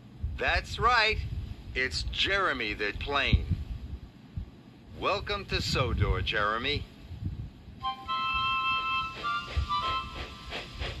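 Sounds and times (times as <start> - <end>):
cartoon steam chuffs: 9.0 - 11.0.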